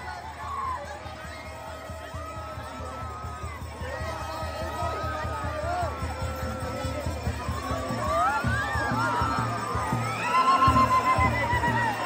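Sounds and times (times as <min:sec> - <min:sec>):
drums beating: 0:00.0 - 0:12.0.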